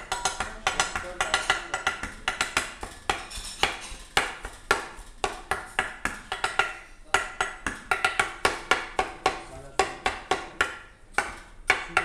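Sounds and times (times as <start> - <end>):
cleaver chopping on metal tray: 0.0 - 12.0.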